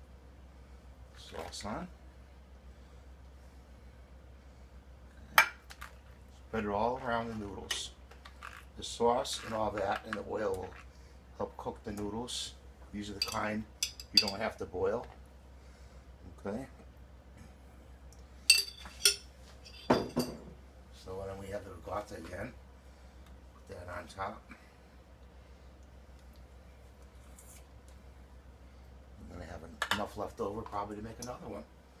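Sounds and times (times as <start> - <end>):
metal spoon clinking against dishes: 13.2 - 14.4, 18.5 - 20.4.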